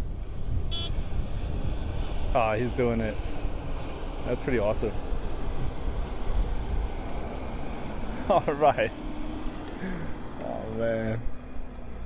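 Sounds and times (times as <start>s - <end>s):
wind on microphone: 0.0s - 4.2s
distant van engine rumble: 0.0s - 12.0s.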